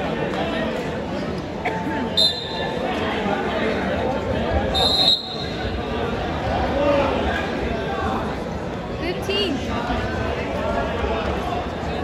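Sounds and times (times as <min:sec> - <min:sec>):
crowd chatter: 0:00.0 - 0:12.0
shrill referee whistle blasts: 0:02.2 - 0:02.7, 0:04.8 - 0:05.6.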